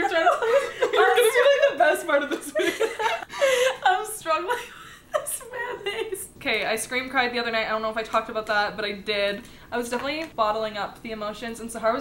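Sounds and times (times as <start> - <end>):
woman speaking: 0.0 - 2.9, 3.7 - 12.0
woman laughing hard: 0.0 - 6.1.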